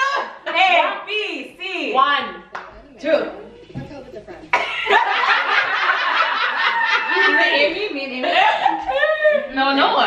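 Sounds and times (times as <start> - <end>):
women laughing: 4.1 - 9.5
women talking: 6.8 - 10.0.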